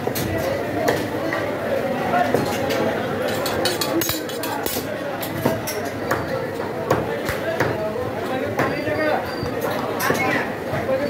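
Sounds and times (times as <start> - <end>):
background talk: 0.0 - 11.0
cleaver chopping meat and bone: 4.1 - 7.8, 8.6 - 8.8.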